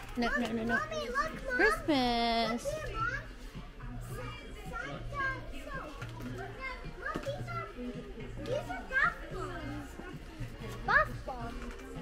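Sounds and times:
faint background music: 0.0 - 12.0
young children chattering: 0.2 - 12.0.

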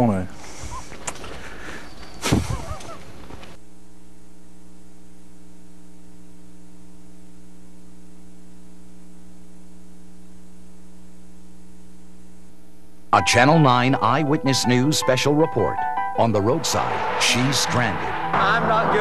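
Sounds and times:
electrical mains hum: 0.0 - 14.9.

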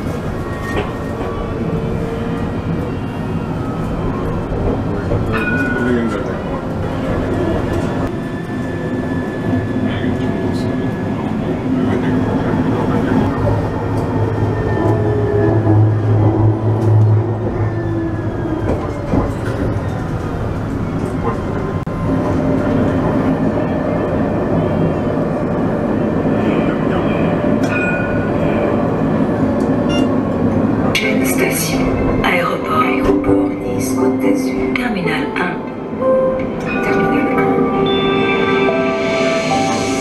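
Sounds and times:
tram wheels rumbling on track: 0.0 - 40.0.

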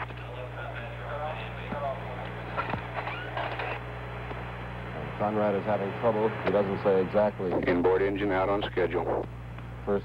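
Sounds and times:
faint radio voices: 0.0 - 3.8, 5.0 - 10.0
low electrical hum: 0.0 - 10.0.

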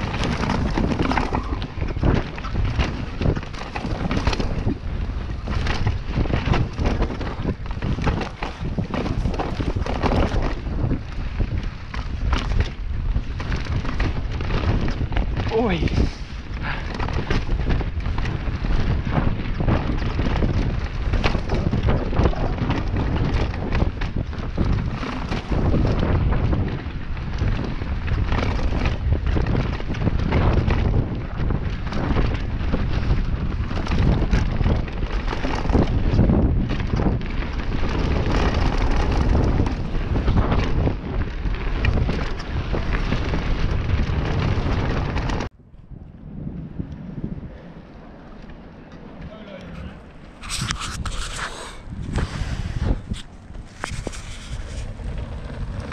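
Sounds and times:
bike knocks and rattles: 0.0 - 45.5
tyres rumbling on dirt: 0.0 - 45.5, 46.4 - 55.9
wind buffeting microphone: 0.0 - 55.9.

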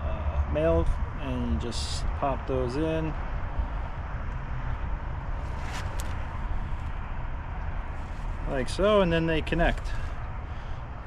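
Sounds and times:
wind buffeting microphone: 0.8 - 11.0.

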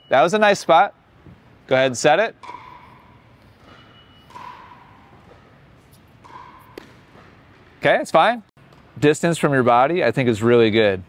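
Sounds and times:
tennis ball impact: 2.4 - 7.7
shoes squeaking on court: 2.5 - 7.8.

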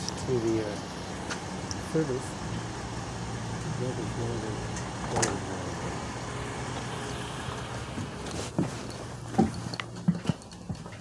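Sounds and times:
footsteps thumping in van: 7.8 - 11.0.

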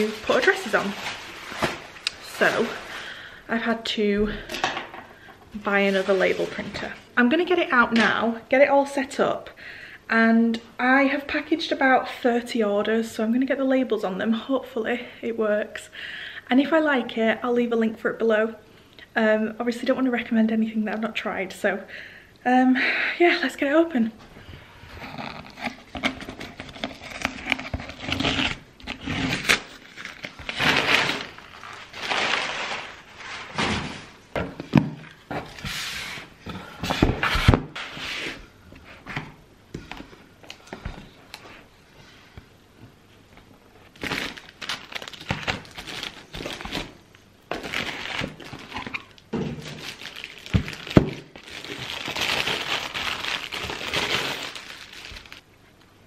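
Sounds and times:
plastic wrapping crinkling: 0.0 - 3.3, 5.6 - 7.0, 25.1 - 34.2, 43.7 - 55.5
cardboard rustling and scraping: 5.7 - 7.0.

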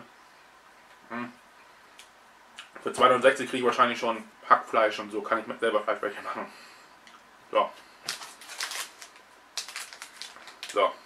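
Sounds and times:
packaging crinkling: 8.0 - 10.9.

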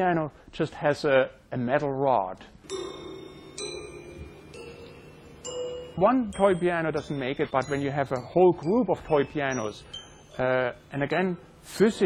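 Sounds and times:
toy piano notes: 2.7 - 11.5.

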